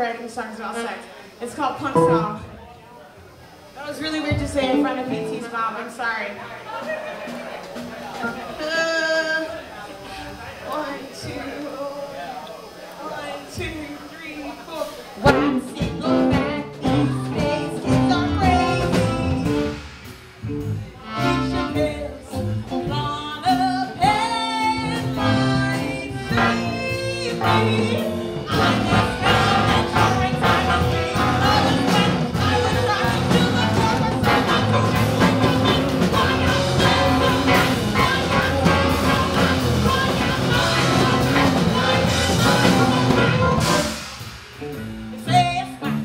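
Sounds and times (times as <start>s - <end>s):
drums: 0.0s - 46.0s
live rock band playing: 1.8s - 2.6s, 14.8s - 46.0s
person singing: 15.2s - 19.7s, 21.2s - 44.0s
bass: 15.2s - 46.0s
electric guitar: 15.2s - 46.0s.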